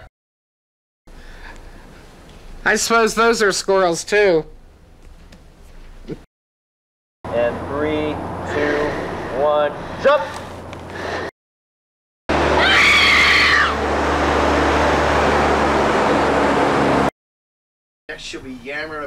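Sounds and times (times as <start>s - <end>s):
high shriek: 12.4s - 13.9s.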